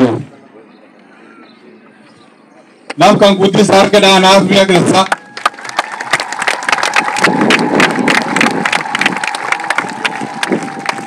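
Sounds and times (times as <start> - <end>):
crowd clapping: 4.9 - 11.0.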